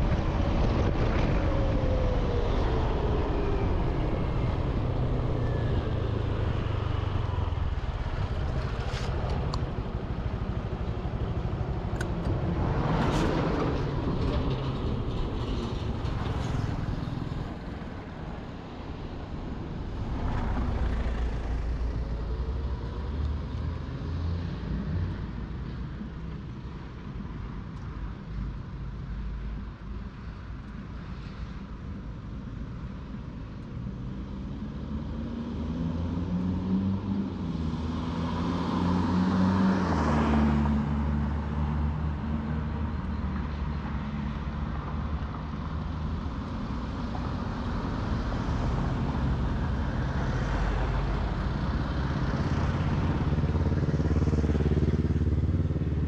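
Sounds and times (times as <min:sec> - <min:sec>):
road and wind noise: 0:00.0 - 0:56.0.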